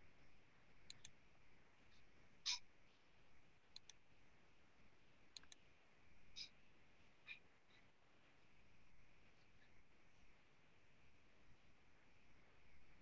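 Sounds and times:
computer mouse clicks: 0:00.8 - 0:01.2, 0:03.7 - 0:04.0, 0:05.3 - 0:05.6.

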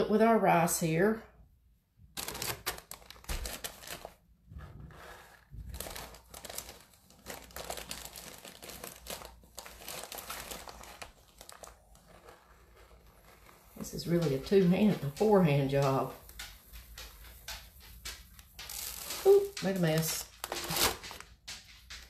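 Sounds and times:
plastic bag crinkling: 0:02.1 - 0:22.0.

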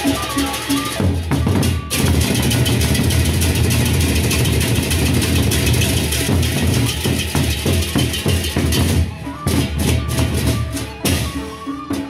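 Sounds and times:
hand cymbals clashing: 0:00.0 - 0:09.0
barrel drums beaten with sticks: 0:00.0 - 0:12.0.

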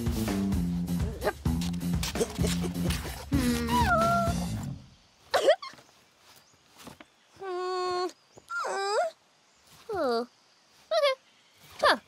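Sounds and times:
cartoon child whiny calls: 0:03.4 - 0:04.5.

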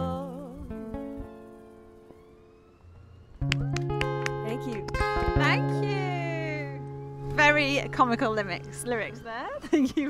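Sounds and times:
acoustic guitar chord ringing: 0:00.0 - 0:02.5, 0:03.6 - 0:10.0
guitars strumming sharp chords: 0:03.4 - 0:09.5.

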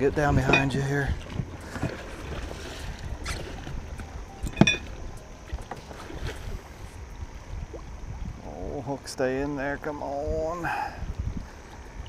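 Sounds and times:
water lapping against boat hull: 0:00.0 - 0:09.1, 0:10.6 - 0:12.0
wind rumble on microphone: 0:00.0 - 0:12.0
clicks and knocks: 0:04.0 - 0:05.0.

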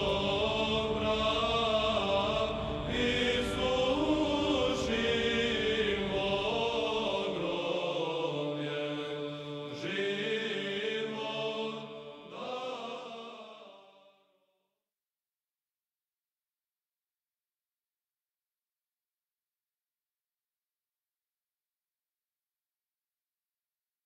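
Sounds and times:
choir chanting: 0:00.0 - 0:14.4.

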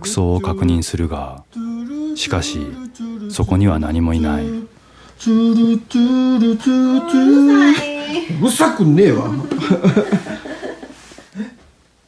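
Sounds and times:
person humming: 0:04.2 - 0:08.4.

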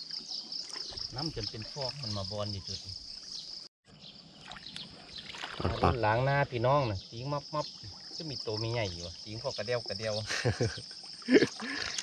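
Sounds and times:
water sloshing from wading: 0:00.0 - 0:03.4, 0:04.3 - 0:06.2, 0:07.6 - 0:09.0.

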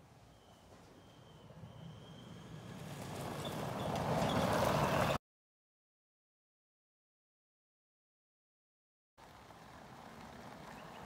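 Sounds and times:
electric vehicle driving: 0:00.2 - 0:05.2, 0:09.2 - 0:11.0.

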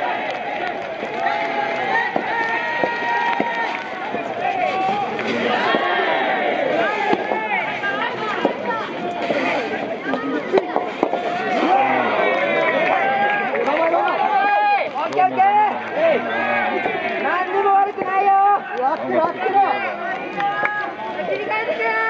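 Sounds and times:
crowd shouting and cheering: 0:00.0 - 0:22.0
rackets striking ball: 0:07.0 - 0:11.5.

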